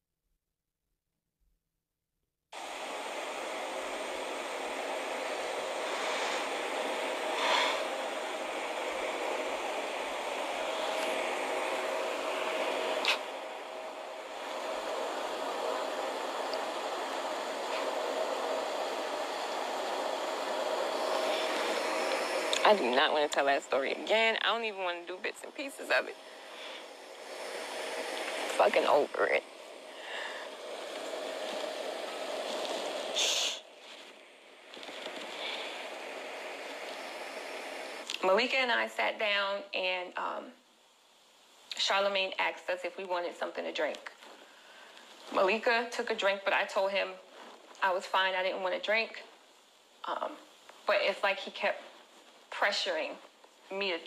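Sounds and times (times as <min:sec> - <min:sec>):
steady rushing noise: 0:02.6 - 0:38.1
faint hum: 0:02.6 - 0:54.0
steady background hiss: 0:02.6 - 0:54.0.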